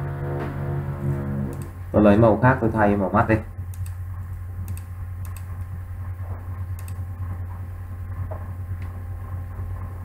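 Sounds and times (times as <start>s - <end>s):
low electrical hum: 0.0s - 10.0s
computer mouse clicks: 1.5s - 1.7s, 3.7s - 4.0s, 4.7s - 5.6s, 6.8s - 7.0s.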